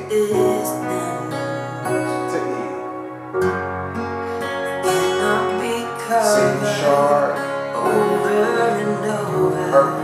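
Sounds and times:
recorded song with singing: 0.0 - 2.9, 4.7 - 10.0
acoustic guitar strumming: 0.0 - 10.0.

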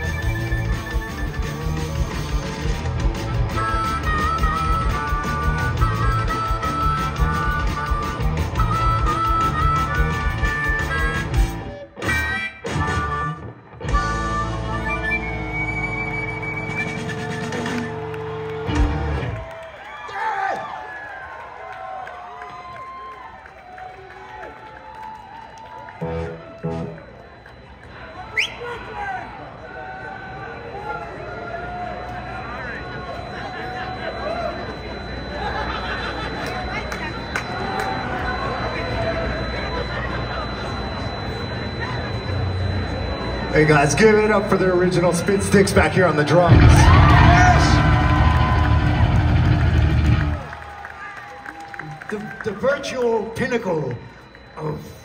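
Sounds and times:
punk rock band playing: 0.0 - 19.4, 44.3 - 50.5
crowd cheering: 13.9 - 55.0
crowd chatter: 26.0 - 55.0.

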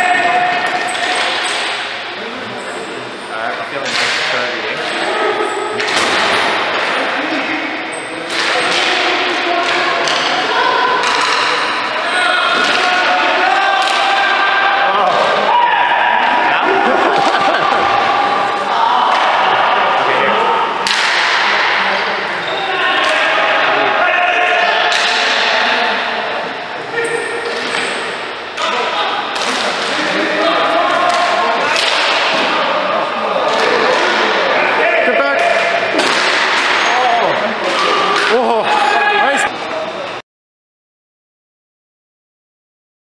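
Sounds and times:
players shouting: 0.0 - 3.2, 4.5 - 40.1
hockey sticks and ball knocking: 8.3 - 10.4, 12.5 - 13.1, 20.8 - 21.8, 35.4 - 36.9.

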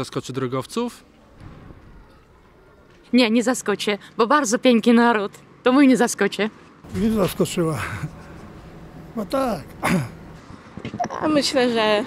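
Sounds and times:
low street rumble: 0.0 - 12.0
street background hiss: 0.0 - 12.0.

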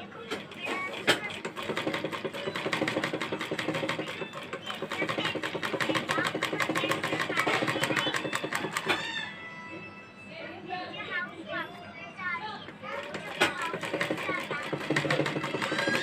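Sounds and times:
sewing machine stitching: 0.0 - 9.0, 12.8 - 16.0.

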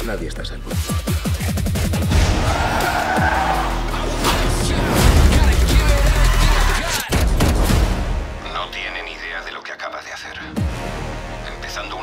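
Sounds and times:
dramatic score: 1.7 - 9.6, 10.3 - 12.0
car engine: 1.8 - 7.3
tyres squealing: 2.2 - 5.0.

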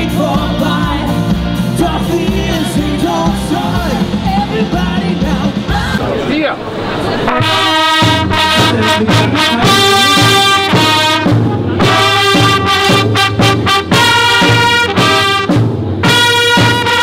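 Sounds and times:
rock band with singer: 0.0 - 6.3, 7.4 - 17.0
brass band playing chords: 0.0 - 17.0.

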